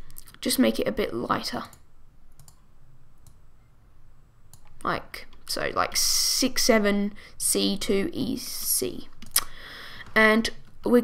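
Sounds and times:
computer mouse clicks: 1.6 - 3.4, 4.5 - 5.4.

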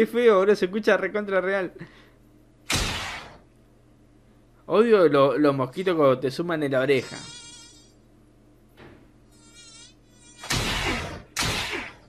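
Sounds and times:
cartoon mosquito buzz: 7.0 - 8.0, 9.3 - 12.0.

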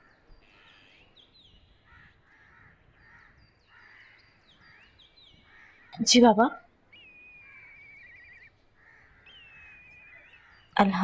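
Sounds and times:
faint crows cawing: 0.0 - 11.0
small birds chirping: 0.0 - 11.0.

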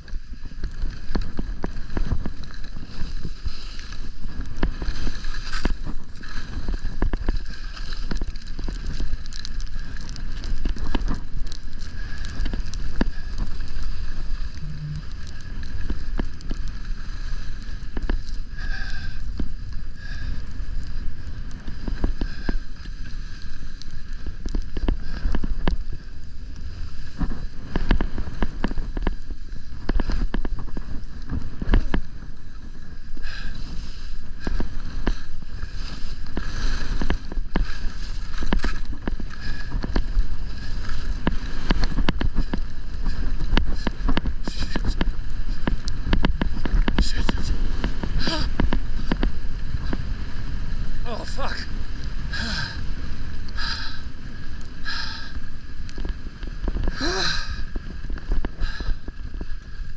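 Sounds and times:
skis scraping on snow: 0.0 - 59.9
wind rushing over microphone: 0.0 - 59.9.

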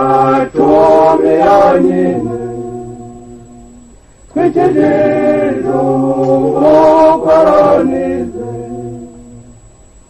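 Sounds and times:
choir singing: 0.0 - 9.6.

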